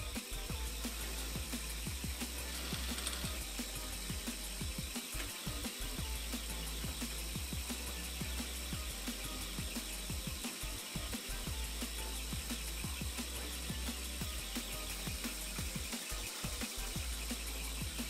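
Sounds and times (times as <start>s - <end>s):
milling machine whine and hum: 0.0s - 18.0s.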